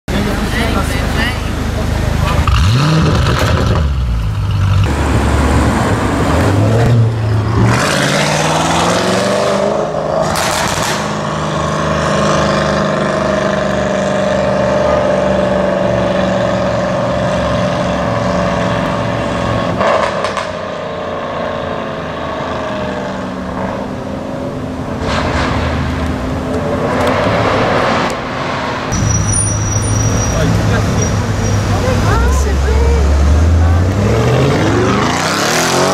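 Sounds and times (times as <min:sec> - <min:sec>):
car engine revving: 0:01.8 - 0:24.2, 0:24.8 - 0:35.9.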